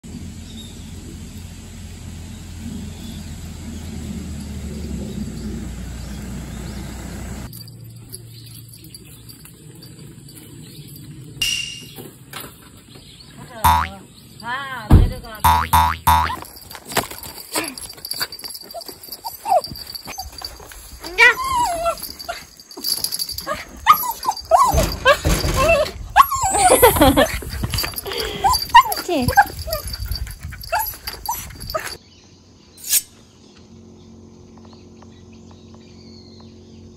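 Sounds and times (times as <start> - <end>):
springy boing sounds: 13.6 - 14.0, 15.4 - 16.4
dogs yipping and growling: 15.9 - 32.0.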